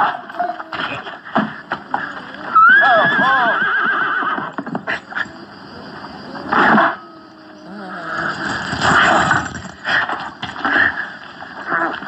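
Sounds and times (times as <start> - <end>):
horse whinnying: 1.9 - 4.9.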